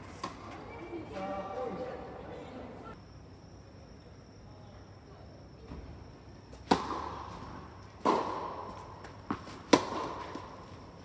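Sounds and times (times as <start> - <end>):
tennis ball bounce: 6.6 - 7.4, 8.0 - 10.6
tennis racket hitting ball: 6.6 - 10.8.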